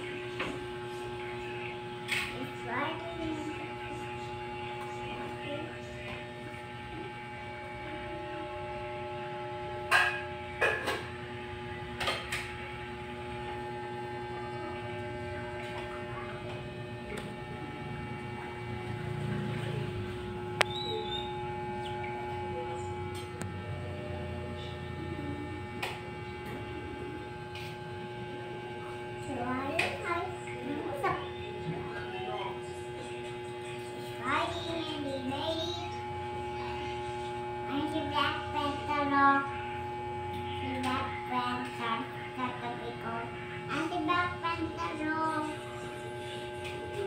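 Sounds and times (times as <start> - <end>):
steady hum of held tones: 0.0 - 47.0.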